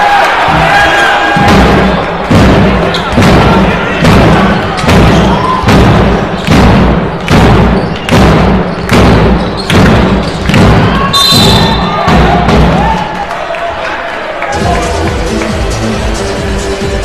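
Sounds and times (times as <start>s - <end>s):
crowd shouting: 0.0s - 6.4s, 10.5s - 15.4s
drum beating steadily: 0.4s - 13.0s, 14.6s - 17.0s
referee's whistle: 7.2s - 9.8s, 10.8s - 12.0s.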